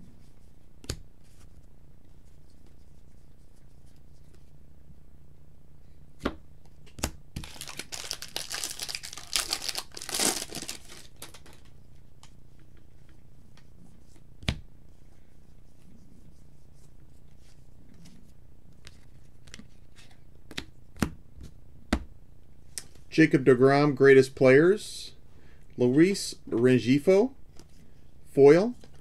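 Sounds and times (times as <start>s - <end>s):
card pack wrapper tearing: 7.4s - 11.6s
wrapper crinkling: 7.4s - 11.7s.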